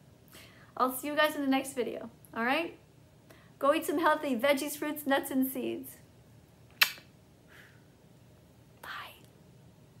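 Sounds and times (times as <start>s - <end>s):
lip smack: 6.7s - 7.2s
breathy puff of air: 7.4s - 8.0s.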